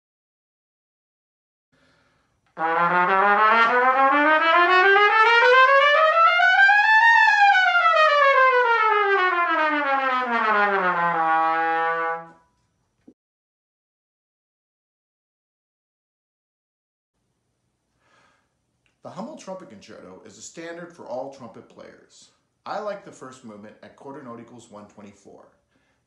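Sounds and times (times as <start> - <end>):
trumpet playing fast scale: 2.6 - 12.4.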